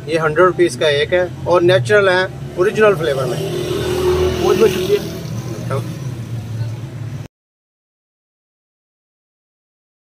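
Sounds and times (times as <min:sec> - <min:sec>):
street traffic hum: 0:00.0 - 0:07.3.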